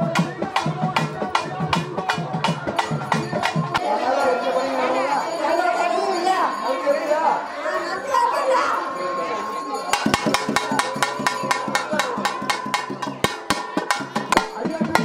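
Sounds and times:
crowd voices: 0.0s - 15.0s
fast hand drum strokes: 10.0s - 15.0s.

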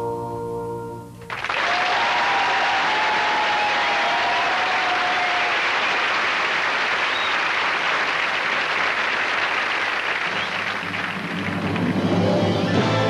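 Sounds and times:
audience applauding: 1.3s - 12.8s.

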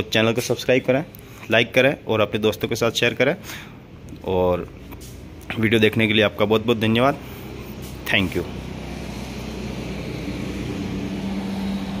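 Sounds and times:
motor droning: 8.5s - 12.0s.

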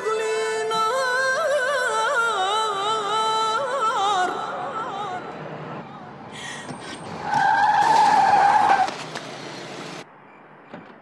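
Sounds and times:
car tyres squealing: 6.4s - 10.0s
tyres skidding with hissing scrub: 6.4s - 10.0s.

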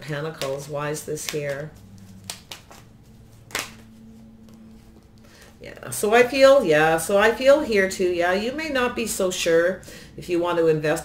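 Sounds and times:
cards clicking and tapping: 0.2s - 2.9s, 3.5s - 5.3s.

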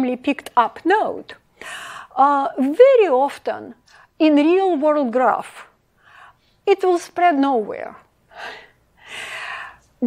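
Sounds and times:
woman breathing into microphone: 8.3s - 9.9s.

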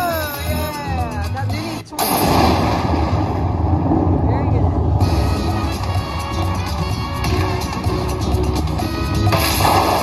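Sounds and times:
loud crash rumbling roar: 2.0s - 6.0s, 9.3s - 10.0s.

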